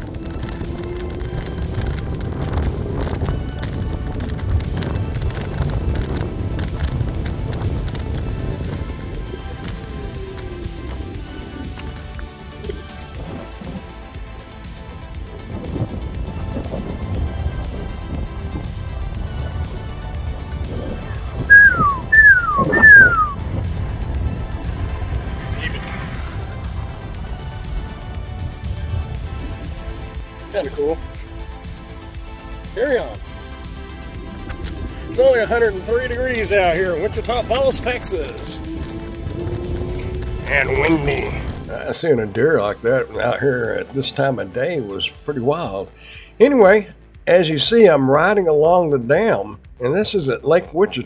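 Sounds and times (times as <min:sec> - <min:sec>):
wind rumble on microphone: 0:00.0 - 0:43.3
background music: 0:00.0 - 0:51.0
short falling whistles: 0:21.5 - 0:23.4.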